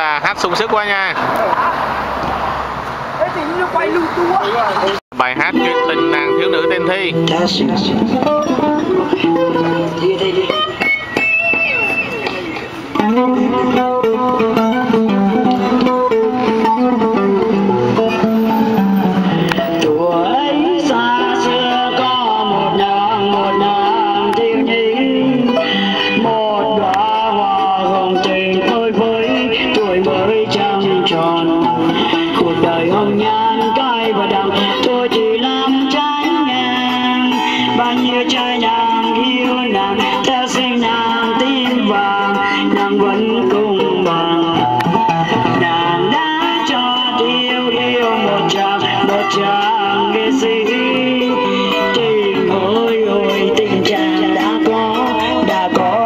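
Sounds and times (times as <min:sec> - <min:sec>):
guitar playing: 0:03.5 - 0:56.0.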